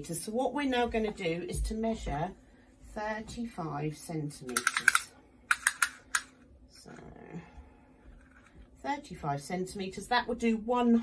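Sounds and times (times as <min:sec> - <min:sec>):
woman speaking: 0:00.0 - 0:05.2, 0:06.7 - 0:07.6, 0:08.8 - 0:11.0.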